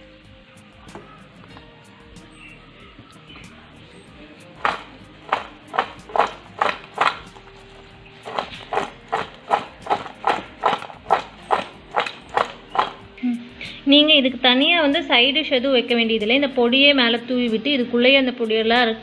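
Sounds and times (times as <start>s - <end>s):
food shaken in a bowl: 4.6s - 13.1s.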